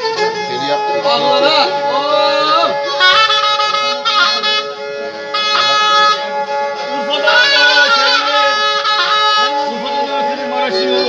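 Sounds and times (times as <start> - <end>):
held drone note: 0.0 - 11.0
zurna playing a melody: 0.0 - 11.0.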